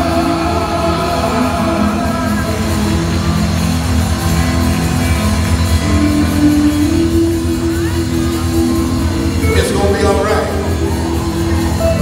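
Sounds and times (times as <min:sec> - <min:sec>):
gospel band playing: 0:00.0 - 0:12.0
guitar: 0:00.0 - 0:12.0
heavy bass: 0:00.0 - 0:12.0.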